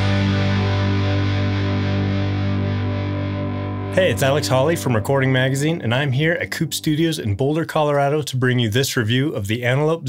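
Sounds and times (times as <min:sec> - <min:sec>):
distorted electric guitar chord: 0:00.0 - 0:07.5.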